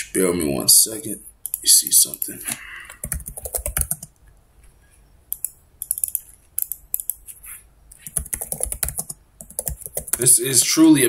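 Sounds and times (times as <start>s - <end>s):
typing on computer keyboard: 3.0s - 4.1s, 5.3s - 7.2s, 8.0s - 10.3s.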